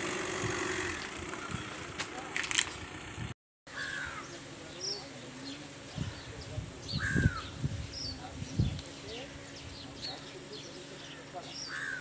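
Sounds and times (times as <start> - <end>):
birds chirping: 3.7 - 12.0
harsh bird call: 11.0 - 12.0.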